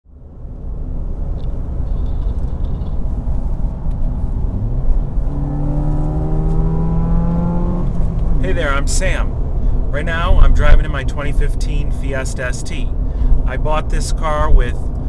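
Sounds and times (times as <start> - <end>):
road rumble: 0.1 - 15.0
car engine accelerating: 0.7 - 9.8.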